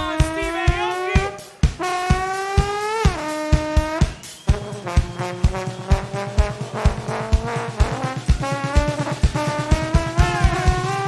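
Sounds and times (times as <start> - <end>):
horn section playing: 0.0 - 11.0
kick drum: 0.0 - 11.0.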